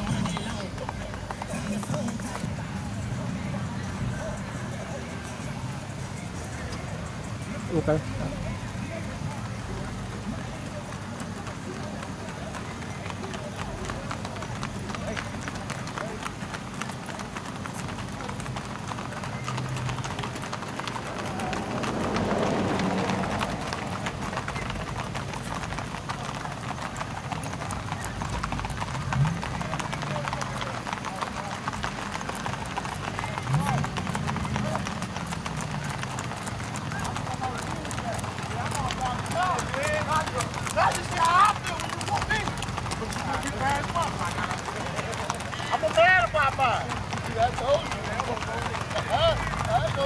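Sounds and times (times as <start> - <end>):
horses hooves on asphalt: 0.0 - 50.0.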